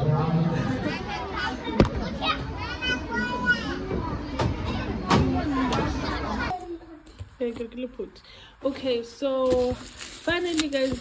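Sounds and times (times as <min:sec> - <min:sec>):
children playing: 0:00.0 - 0:07.4.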